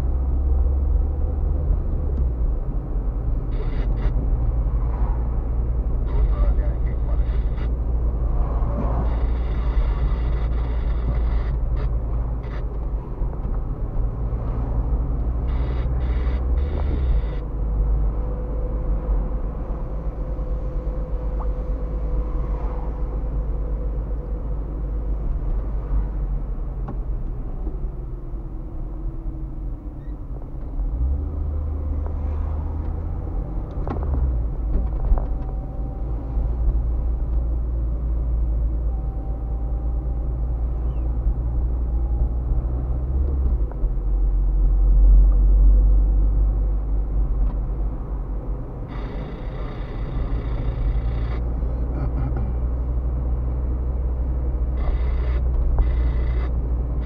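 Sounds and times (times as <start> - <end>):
car engine and tyre rumble: 0.0 - 57.0.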